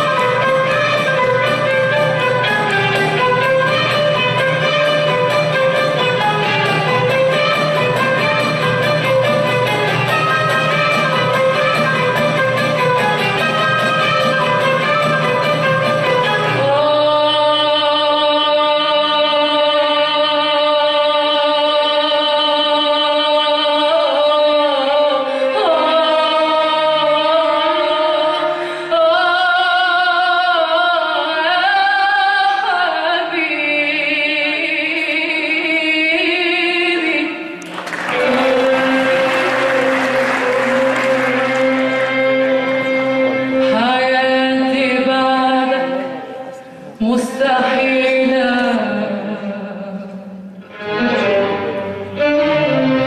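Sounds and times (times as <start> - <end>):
violins and cellos playing melody: 0.0 - 16.8, 37.6 - 44.2, 50.7 - 53.0
plucked string instrument: 0.0 - 20.5, 36.3 - 49.4, 50.6 - 53.0.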